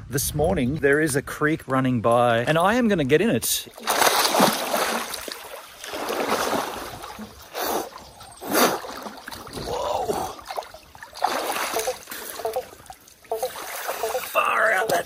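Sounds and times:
running water: 3.6s - 15.0s
splashing in shallow water: 3.6s - 15.0s.

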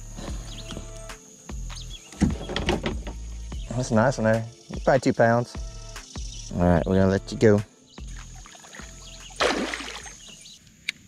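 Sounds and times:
fish splashing in water: 8.4s - 10.4s.

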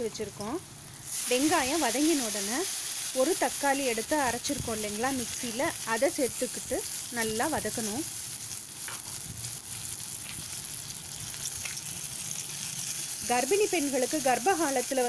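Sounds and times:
food sizzling in hot oil: 0.0s - 15.0s.

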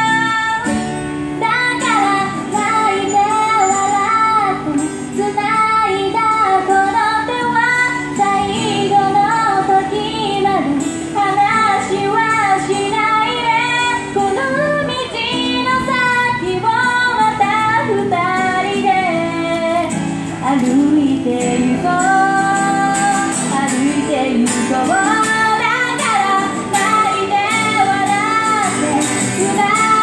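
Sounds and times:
acoustic guitar: 0.0s - 30.0s
woman singing pop ballad: 0.0s - 30.0s.

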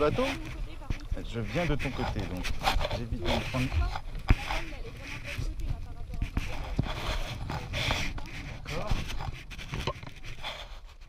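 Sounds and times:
rustling and scraping on deck: 0.0s - 11.0s
wind rumbling on microphone: 0.0s - 11.0s.

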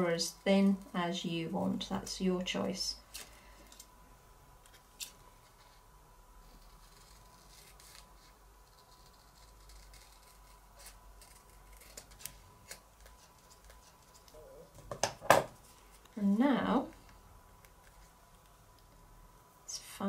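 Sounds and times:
scissors snipping paper: 6.5s - 14.4s.

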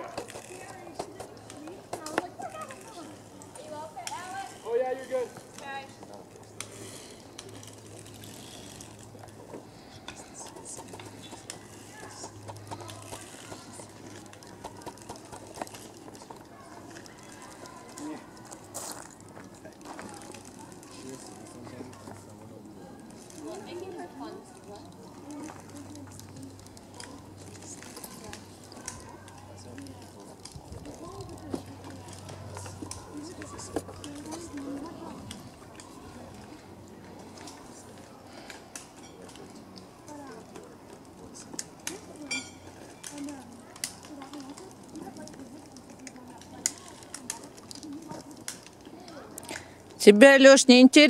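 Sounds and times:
distant voices talking: 0.0s - 50.0s.

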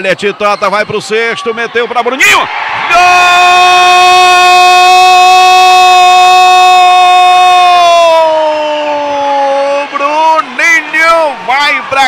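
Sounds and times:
commentator shouting goal: 1.2s - 8.4s, 9.3s - 12.0s.

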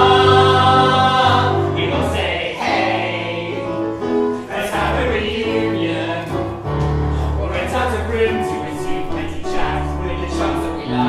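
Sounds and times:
mixed choir singing: 0.0s - 6.6s, 7.4s - 11.0s.

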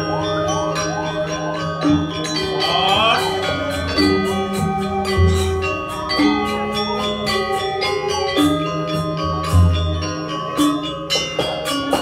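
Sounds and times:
gamelan playing: 0.0s - 12.0s.

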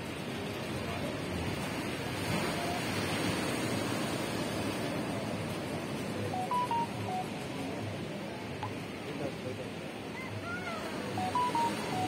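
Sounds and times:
surf breaking over rocks: 0.0s - 7.4s
high whistle-like beeps: 6.4s - 7.3s, 11.2s - 12.0s.

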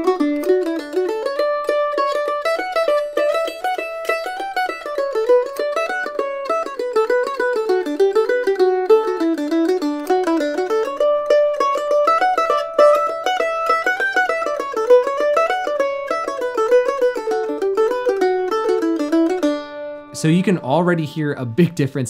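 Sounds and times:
mandolin picked melody: 0.0s - 22.0s.

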